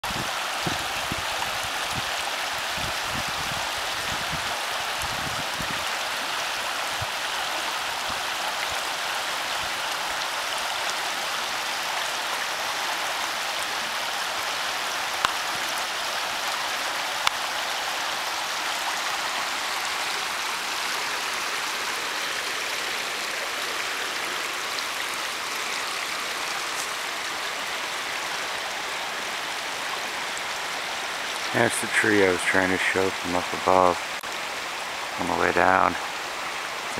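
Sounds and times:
creek water rushing: 0.0s - 36.9s.

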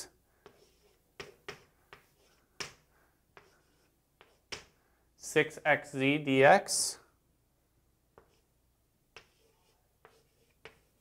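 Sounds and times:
chalk scratching on blackboard: 0.0s - 4.8s, 8.2s - 8.5s, 9.1s - 11.0s
chalk tapping on blackboard: 0.4s - 4.8s, 8.2s - 8.4s, 9.1s - 11.0s.

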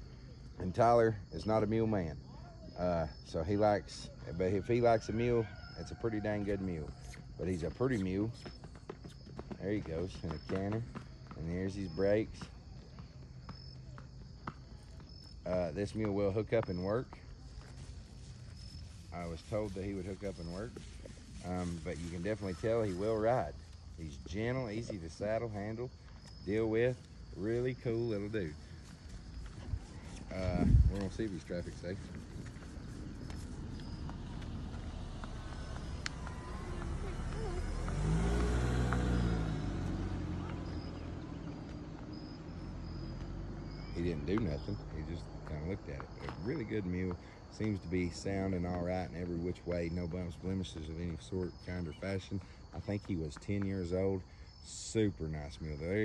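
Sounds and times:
high insect chirp: 0.0s - 56.0s
mule hoofsteps: 3.6s - 55.6s
car driving past: 31.4s - 46.6s.

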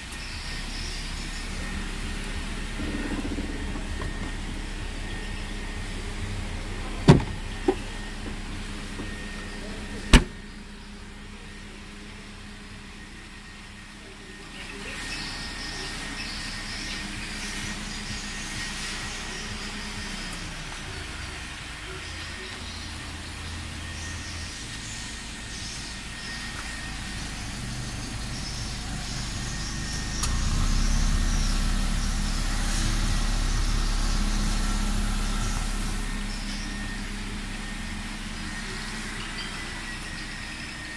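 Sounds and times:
car engine idling: 0.0s - 40.9s
car boot lid slamming: 6.8s - 7.9s, 10.0s - 10.4s.

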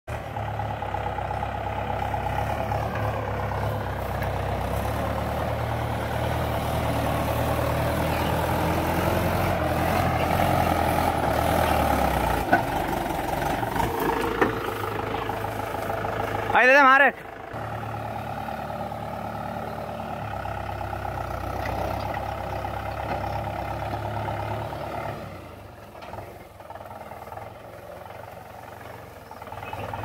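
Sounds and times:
tractor diesel engine under load: 0.0s - 30.0s.

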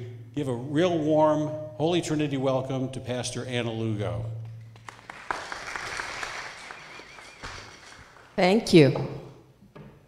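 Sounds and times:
congregation applauding: 4.7s - 8.6s.

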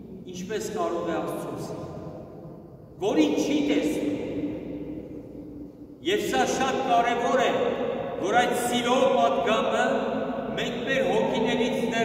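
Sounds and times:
man's voice on a low note: 0.0s - 1.9s, 3.0s - 4.5s, 6.0s - 12.0s.

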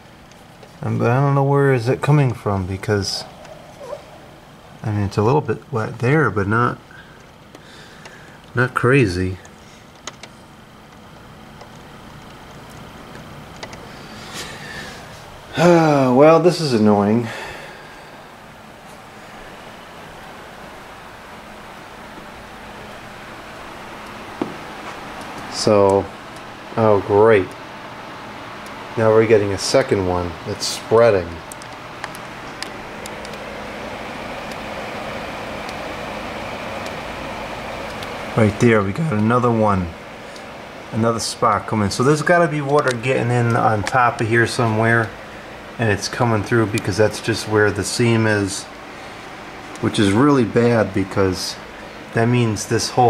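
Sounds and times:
steady rain hiss: 0.0s - 53.0s.

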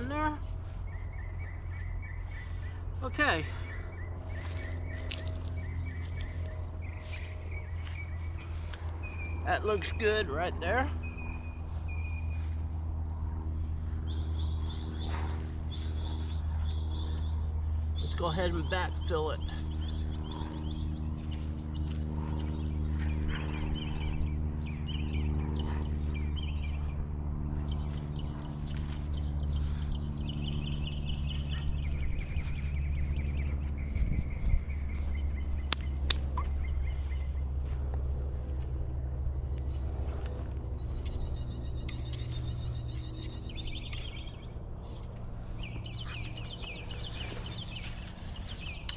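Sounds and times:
birds calling: 0.0s - 48.9s
steady low hum: 0.0s - 48.9s.

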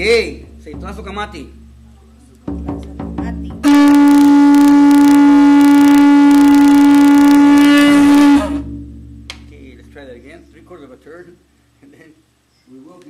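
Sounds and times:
conch shell trumpet note: 3.6s - 10.5s.

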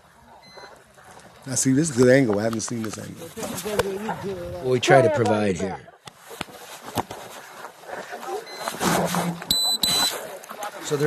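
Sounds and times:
short high-pitched electronic beeps: 8.5s - 10.1s.

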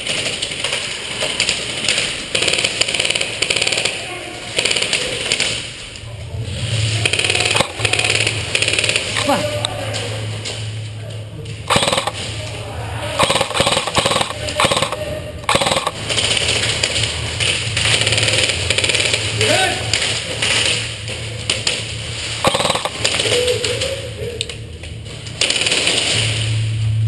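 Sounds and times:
airsoft guns firing: 0.0s - 5.8s, 6.9s - 9.6s, 11.7s - 12.4s, 13.2s - 23.8s, 25.3s - 26.5s
voices calling out: 3.5s - 25.1s
low hum: 5.7s - 27.0s.

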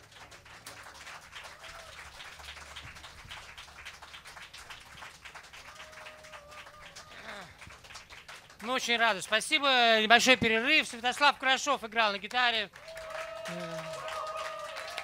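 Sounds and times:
audience clapping: 0.0s - 15.0s.

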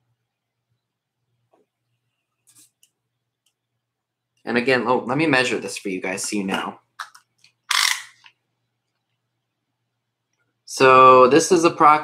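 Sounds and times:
tape measure blade rattling: 7.0s - 8.3s.

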